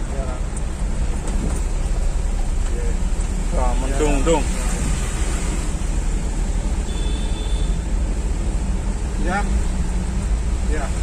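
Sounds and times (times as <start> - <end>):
vehicle rumble from inside cab: 0.0 - 11.0.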